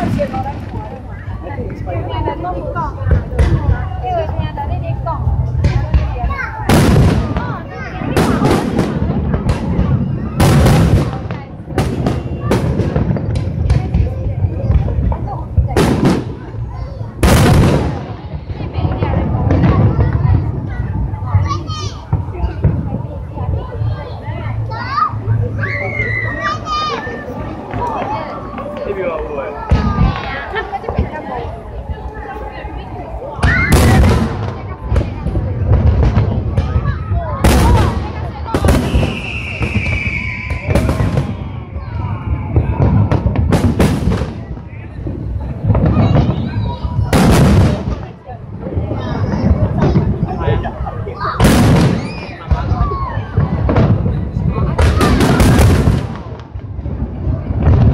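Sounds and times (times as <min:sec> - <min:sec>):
crowd chatter: 0:00.0 - 0:57.9
fireworks rumbling and popping: 0:00.0 - 0:57.9
child's high-pitched voice: 0:19.6 - 0:22.7, 0:26.3 - 0:27.3.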